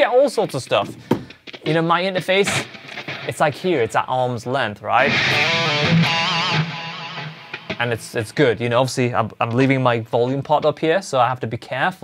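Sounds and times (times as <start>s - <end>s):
electric guitar lead note with vibrato: 5.1s - 7.8s.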